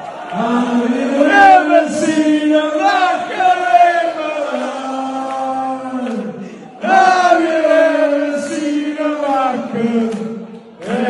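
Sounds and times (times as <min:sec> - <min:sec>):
men singing a chant: 0:00.3 - 0:11.0.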